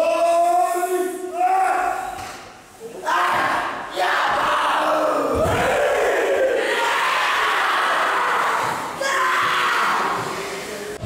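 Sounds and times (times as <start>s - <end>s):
boys shouting a chant together: 3.0s - 10.4s.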